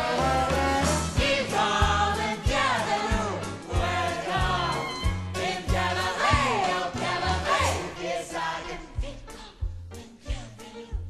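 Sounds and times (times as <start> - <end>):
group singing a show tune: 0.0 - 11.0.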